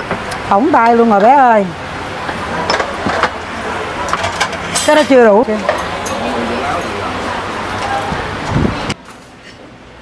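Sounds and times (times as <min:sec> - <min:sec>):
fans and background bustle: 0:00.0 - 0:10.0.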